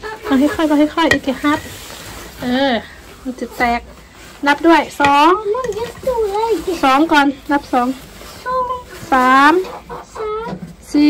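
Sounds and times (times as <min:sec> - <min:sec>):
hen clucking: 0:00.0 - 0:11.0.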